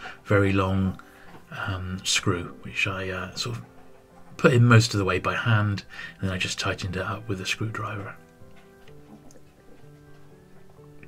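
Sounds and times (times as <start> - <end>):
soft slow background music: 0.0 - 11.0.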